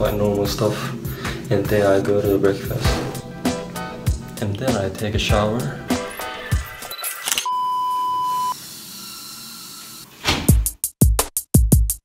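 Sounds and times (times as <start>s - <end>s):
background music: 0.0s - 7.4s
censor bleep: 7.4s - 8.6s.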